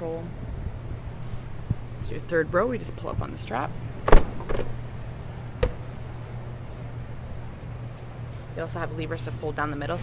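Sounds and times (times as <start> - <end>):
folding seat knocks: 4.0 - 4.8
seat latch clunk: 4.0 - 4.8.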